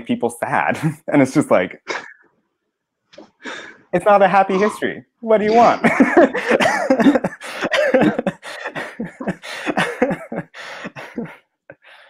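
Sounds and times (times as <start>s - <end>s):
person speaking: 0.0s - 2.2s, 3.2s - 11.4s
person laughing hard: 5.5s - 11.4s.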